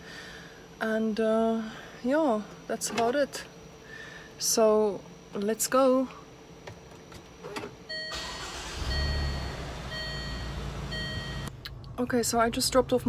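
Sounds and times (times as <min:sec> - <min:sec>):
car engine starting and rumbling: 0:07.9 - 0:13.0.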